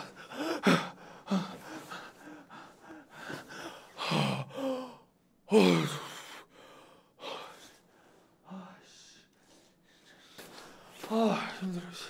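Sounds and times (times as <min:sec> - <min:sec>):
man gasping and sighing: 0:00.0 - 0:07.8.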